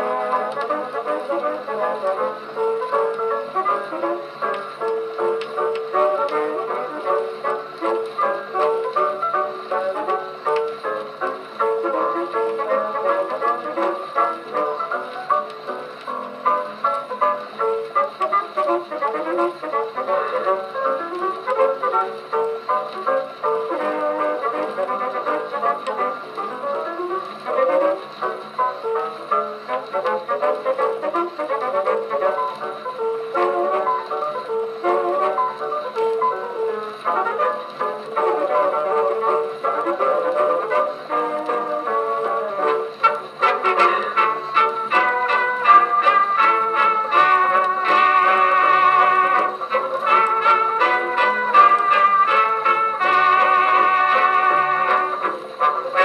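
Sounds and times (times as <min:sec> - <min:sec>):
phonograph dance orchestra music: 0:00.0 - 0:56.0.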